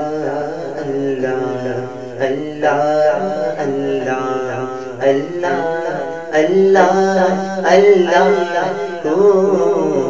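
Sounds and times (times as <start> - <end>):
man singing devotional song: 0.0 - 10.0.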